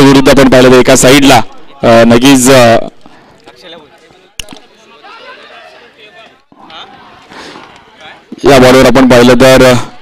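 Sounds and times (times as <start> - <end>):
faint crowd voices: 0.9 - 10.0.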